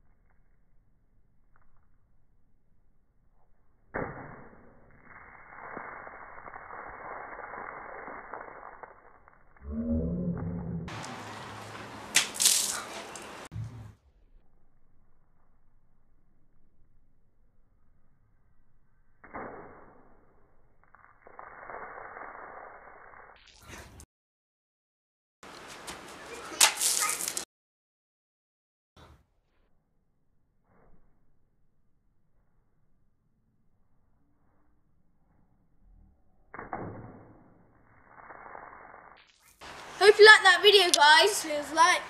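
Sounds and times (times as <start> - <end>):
water balloon bursting splash: 10.9 - 13.5, 26.6 - 27.4.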